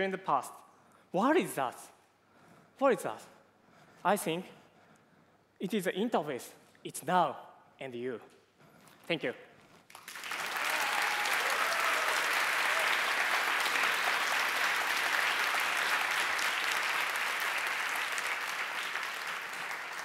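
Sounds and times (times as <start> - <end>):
audience applauding: 9.9 - 20.0.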